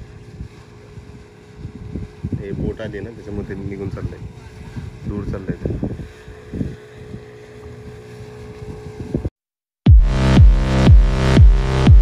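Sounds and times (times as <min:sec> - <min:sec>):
boat engine rumble: 0:00.0 - 0:09.3
wind noise on microphone: 0:00.0 - 0:09.3.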